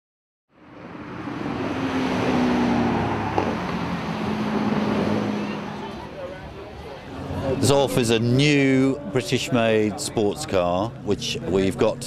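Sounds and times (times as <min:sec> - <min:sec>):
car engine passing: 0:00.6 - 0:08.3.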